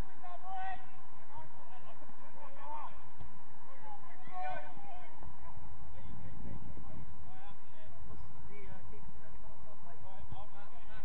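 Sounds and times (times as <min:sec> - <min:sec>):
distant players shouting: 0:00.0 - 0:09.4
low uneven rumble: 0:00.0 - 0:11.0.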